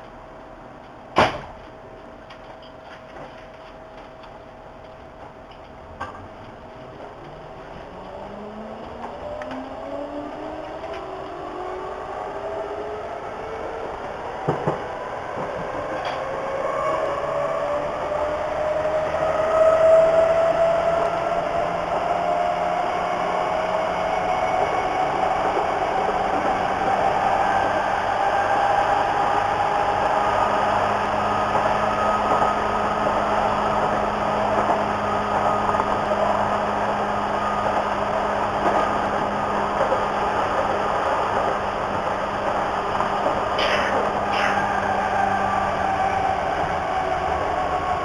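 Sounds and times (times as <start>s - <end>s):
train wheels rumbling on rails: 0.0s - 48.0s
traction motor whine: 6.4s - 12.2s.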